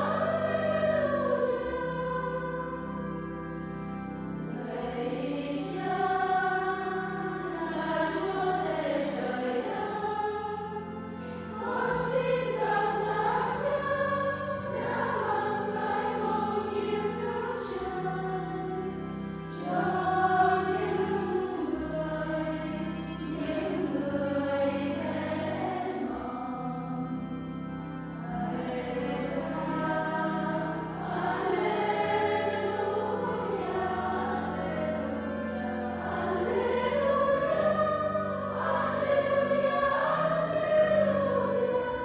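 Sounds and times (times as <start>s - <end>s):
choir singing a hymn: 0.0s - 42.0s
low held accompaniment notes: 0.0s - 42.0s.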